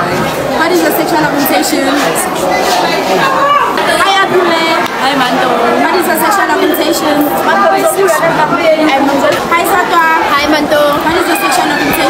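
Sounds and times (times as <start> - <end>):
background chatter: 0.0 - 12.0
voices talking over one another: 0.0 - 12.0.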